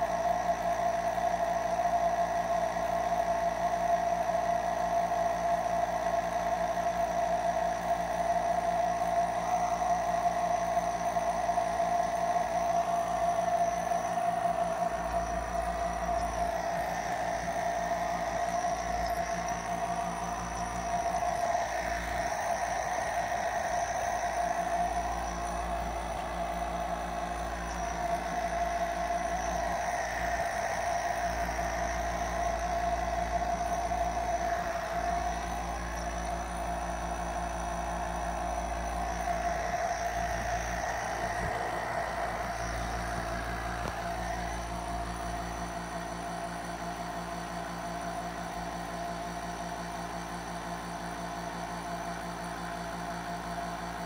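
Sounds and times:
nebulizer compressor humming: 0.0 - 48.8.

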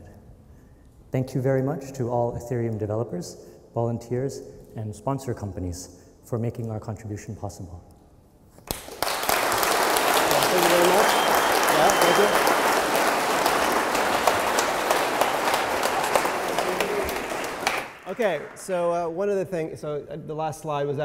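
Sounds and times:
audience applauding: 8.7 - 19.1.

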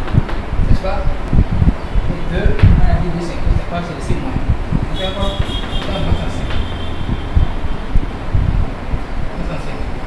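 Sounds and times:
steady low rumble: 0.6 - 10.0.

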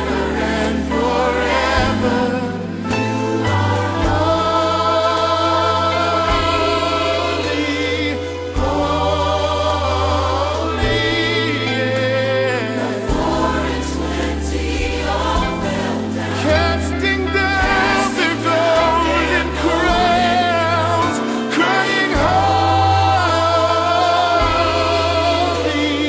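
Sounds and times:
gospel choir singing: 0.0 - 26.0.

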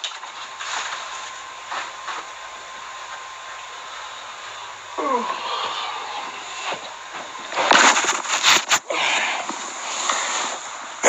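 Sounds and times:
steady hiss: 0.0 - 11.0
microphone handling rustle: 6.7 - 8.9.

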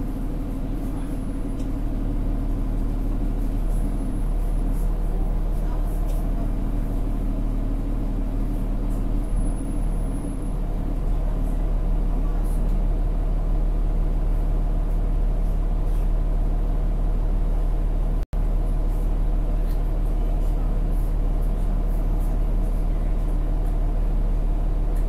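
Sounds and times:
bus engine low hum: 0.0 - 25.0.

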